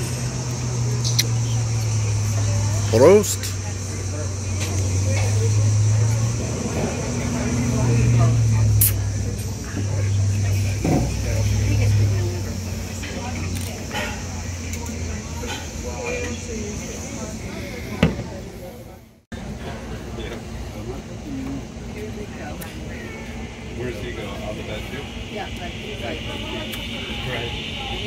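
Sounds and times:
steady high drone: 0:00.0 - 0:28.0.

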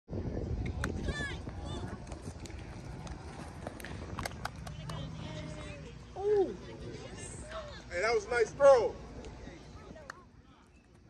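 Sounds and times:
kids shouting and chattering: 0:04.9 - 0:07.9.

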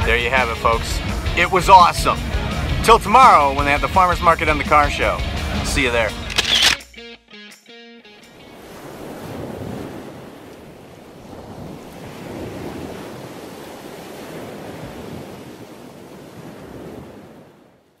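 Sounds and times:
waves washing onto beach: 0:08.3 - 0:18.0.

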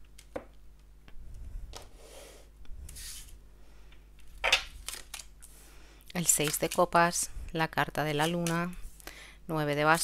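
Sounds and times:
cards sliding and swishing: 0:01.8 - 0:03.4.

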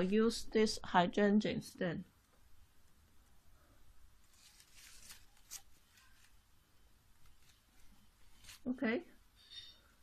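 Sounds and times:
artificial flowers rustling: 0:03.5 - 0:10.0.

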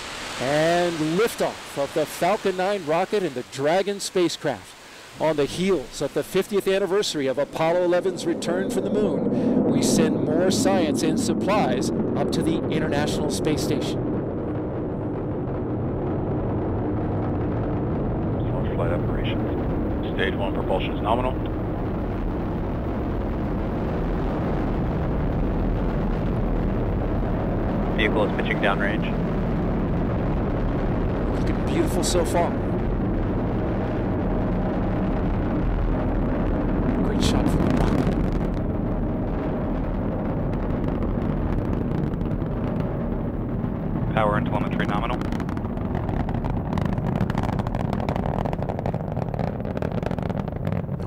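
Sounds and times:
deep rocket engine rumble: 0:00.0 - 0:51.0.

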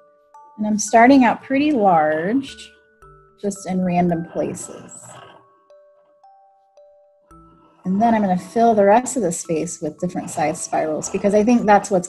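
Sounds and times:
bell-like music notes: 0:00.0 - 0:12.0.

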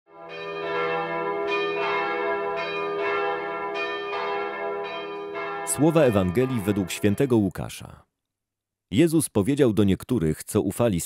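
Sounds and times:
bells ringing: 0:00.2 - 0:07.5.

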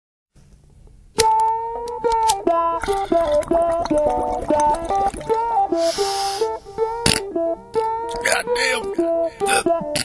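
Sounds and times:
ringing guitar notes: 0:01.2 - 0:10.0.

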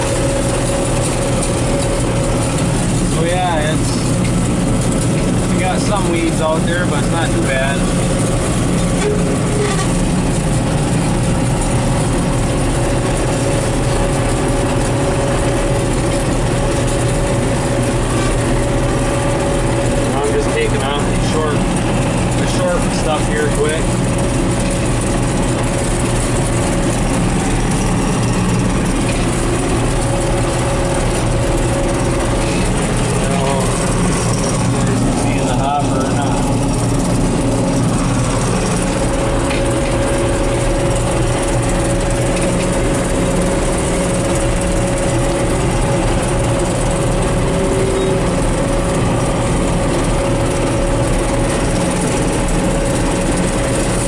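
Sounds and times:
combine harvester engine drone: 0:00.0 - 0:54.0
machinery whine: 0:00.0 - 0:54.0.

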